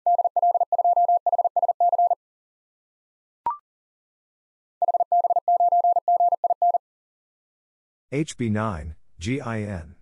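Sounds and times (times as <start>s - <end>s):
morse code beeps: 0.0s - 2.2s, 4.8s - 6.8s.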